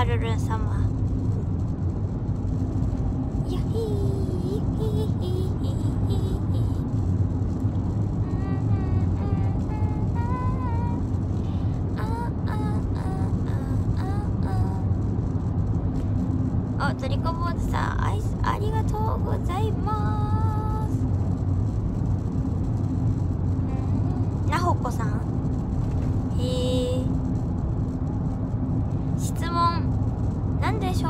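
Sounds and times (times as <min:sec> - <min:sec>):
car engine rumble: 0:00.0 - 0:31.0
road noise inside cabin: 0:00.0 - 0:31.0
faint singing voice: 0:08.2 - 0:11.0.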